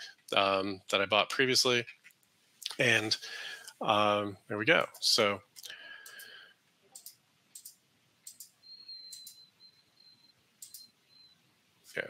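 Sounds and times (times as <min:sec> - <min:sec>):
computer mouse clicks: 0:06.0 - 0:06.3, 0:06.9 - 0:09.4, 0:10.6 - 0:10.9.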